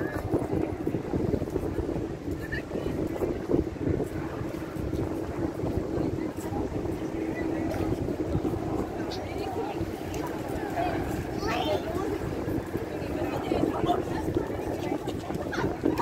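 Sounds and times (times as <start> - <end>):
crowd of people talking: 0.0 - 16.0
wind rumbling on microphone: 0.0 - 16.0.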